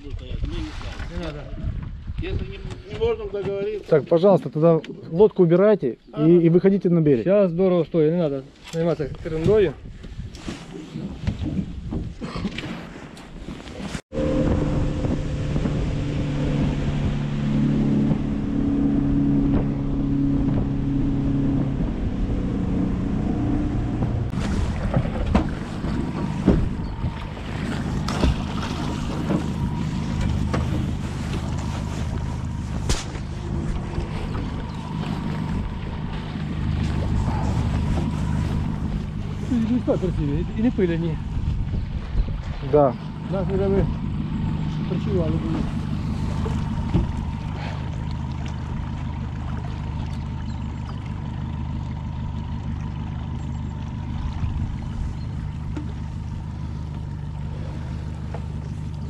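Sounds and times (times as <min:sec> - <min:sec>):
wind noise: 0:00.0 - 0:03.4, 0:09.1 - 0:40.6, 0:41.2 - 0:42.7
water noise: 0:09.0 - 0:59.0
outboard motor running: 0:14.1 - 0:59.0.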